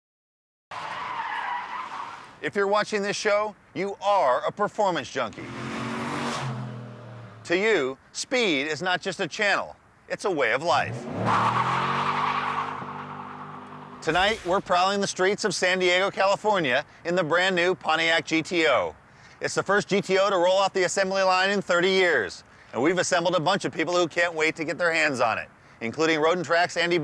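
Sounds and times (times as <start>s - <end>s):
car tyres squealing: 0.7s - 2.4s, 5.4s - 7.5s, 10.9s - 14.6s.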